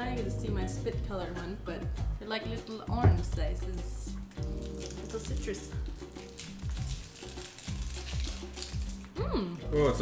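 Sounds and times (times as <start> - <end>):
background music held low notes: 0.0 - 10.0
low thumping beat: 2.9 - 4.6.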